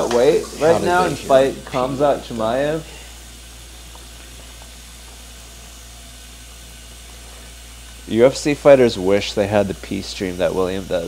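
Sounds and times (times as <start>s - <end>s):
low electrical hum: 0.0s - 11.0s
steady microphone hiss: 0.0s - 11.0s.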